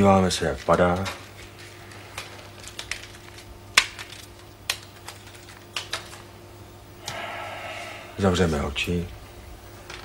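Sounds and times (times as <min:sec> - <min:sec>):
paper slips crackling as they drop: 0:00.0 - 0:06.3
low steady hum: 0:00.0 - 0:10.0.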